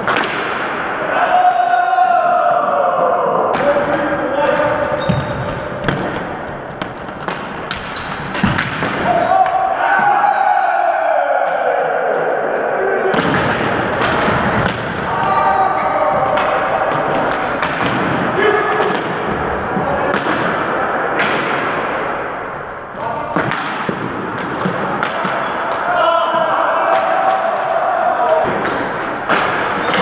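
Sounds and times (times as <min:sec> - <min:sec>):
players calling out: 0:01.1 - 0:24.0
sneakers squeaking: 0:03.7 - 0:09.8, 0:13.4 - 0:20.2, 0:21.8 - 0:23.0, 0:28.7 - 0:30.0.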